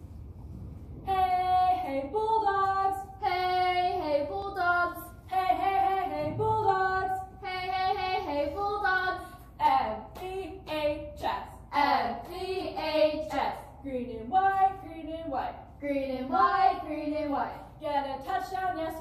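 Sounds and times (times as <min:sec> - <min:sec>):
girl singing a chant: 0:01.1 - 0:19.0.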